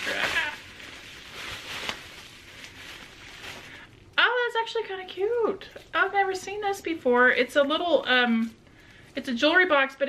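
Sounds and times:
bubble wrap crinkling: 0.0 - 9.7.

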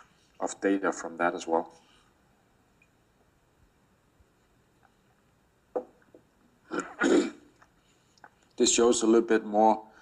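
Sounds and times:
man clearing his throat: 6.7 - 7.5.

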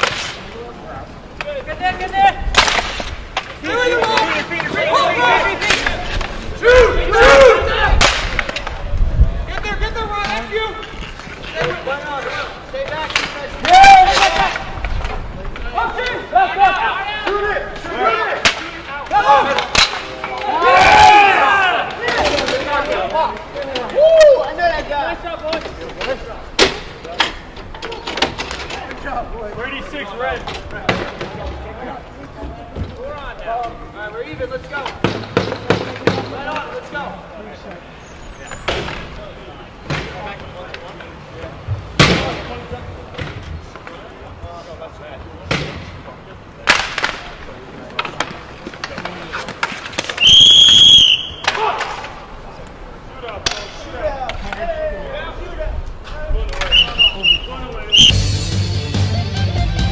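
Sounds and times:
hockey sticks clacking: 0.0 - 44.7, 45.4 - 55.0, 55.7 - 58.1
people shouting and cheering: 3.6 - 10.9, 11.6 - 14.9, 15.6 - 25.4, 50.2 - 52.3
referee's whistle blast: 50.2 - 51.5, 56.7 - 58.2.

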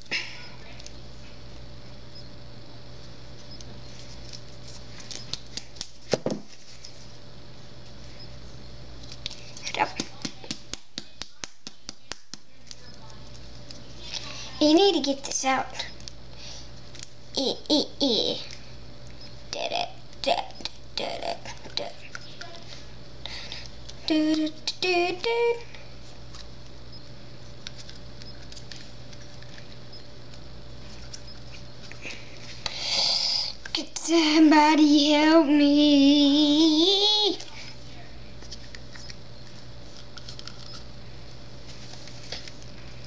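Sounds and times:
low room hum: 0.0 - 43.0
breathy hiss: 32.0 - 33.6.

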